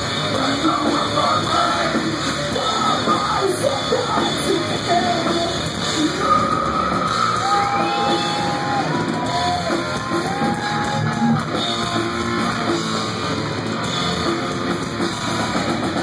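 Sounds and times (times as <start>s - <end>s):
distorted electric guitars bending notes: 0.0s - 16.0s
heavy metal band playing live: 0.0s - 16.0s.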